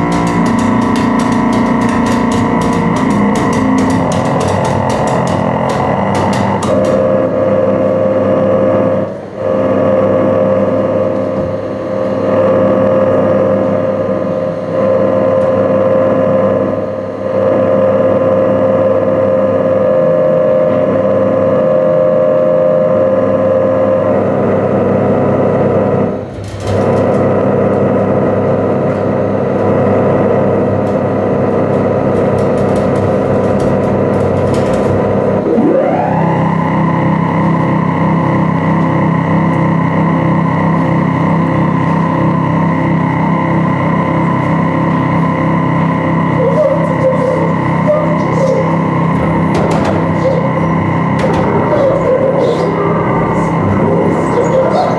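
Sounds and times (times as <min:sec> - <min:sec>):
distorted electronic drones: 0:00.0 - 0:54.9
double bass through effects: 0:00.0 - 0:54.9.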